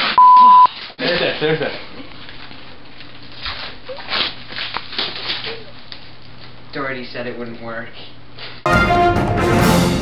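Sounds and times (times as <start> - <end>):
duct tape crinkling and ripping: 2.1 - 6.5.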